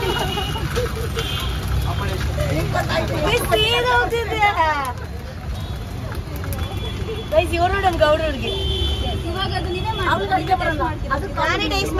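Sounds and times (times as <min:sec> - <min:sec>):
street traffic rumble: 0:00.0 - 0:11.9
women chattering and laughing: 0:00.0 - 0:11.9.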